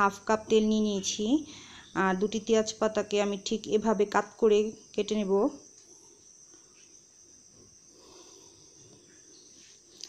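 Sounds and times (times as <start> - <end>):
faint high-pitched whine: 0.0 - 10.0.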